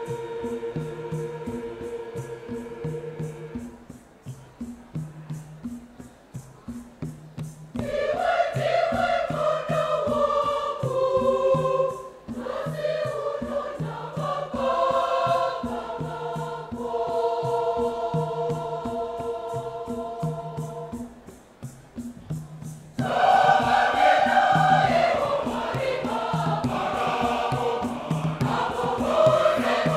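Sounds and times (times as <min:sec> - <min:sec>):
choir singing a hymn: 0:00.0 - 0:04.0, 0:07.7 - 0:21.4, 0:23.0 - 0:29.9
gourd shakers: 0:00.0 - 0:29.9.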